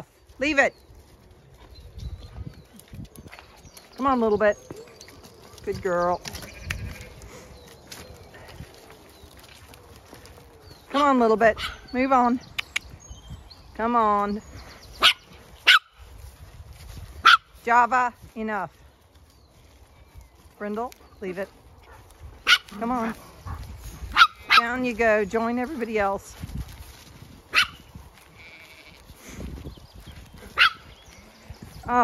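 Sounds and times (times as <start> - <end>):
dog barking: 11.6 - 11.8, 15.0 - 16.0, 17.2 - 17.5, 21.9 - 22.7, 23.5 - 24.7, 27.5 - 27.8, 30.6 - 30.8.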